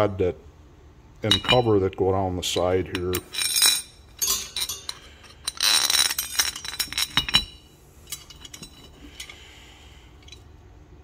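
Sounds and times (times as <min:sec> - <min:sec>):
metal parts clinking: 0:01.2 - 0:01.7, 0:02.9 - 0:09.4.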